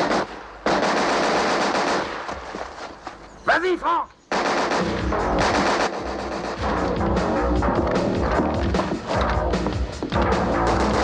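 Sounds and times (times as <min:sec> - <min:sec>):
rapid automatic gunfire: 0:00.0 - 0:02.3, 0:04.3 - 0:06.9, 0:10.8 - 0:11.0
music: 0:04.7 - 0:11.0.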